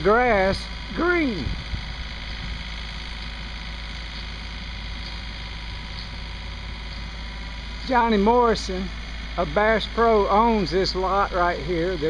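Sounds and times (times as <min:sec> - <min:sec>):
distant engine droning: 0:00.0 - 0:12.0.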